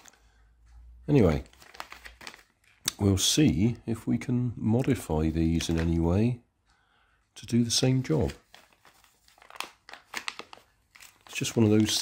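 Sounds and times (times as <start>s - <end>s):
plastic packet crinkling: 1.1s - 2.9s, 7.9s - 12.0s.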